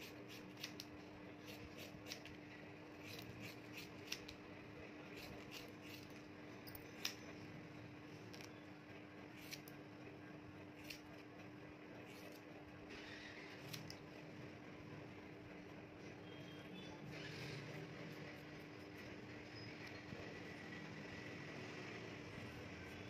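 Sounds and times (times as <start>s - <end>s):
scissors snipping hair: 0.0s - 2.3s, 3.0s - 4.4s, 5.1s - 6.1s, 6.8s - 7.2s, 9.4s - 9.8s, 10.8s - 11.2s, 13.6s - 14.0s.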